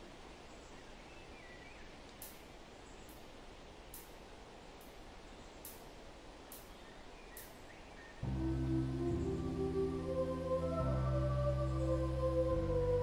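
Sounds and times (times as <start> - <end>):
distant bird chirps: 0.0 - 12.9
soft hiss: 0.0 - 13.0.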